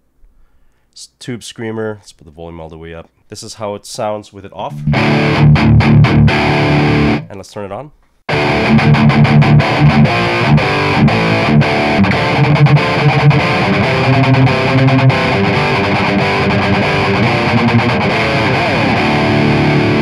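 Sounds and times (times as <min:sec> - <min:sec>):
distorted electric guitar riff: 0:04.7 - 0:07.3, 0:08.3 - 0:20.0.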